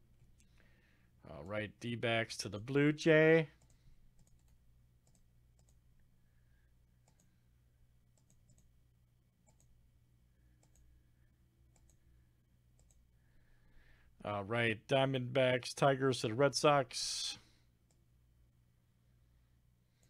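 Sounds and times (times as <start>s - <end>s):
low steady hum: 0.0s - 20.0s
faint computer mouse clicks: 7.0s - 7.4s, 10.6s - 10.9s, 11.7s - 12.0s.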